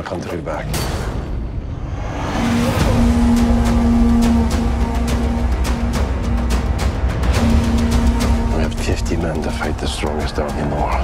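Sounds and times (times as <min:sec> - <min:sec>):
deep rumbling swell: 0:01.5 - 0:11.0.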